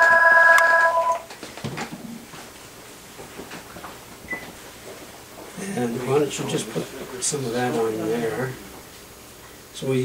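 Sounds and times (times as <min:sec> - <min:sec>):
electronic ringing tone: 0:00.0 - 0:01.3.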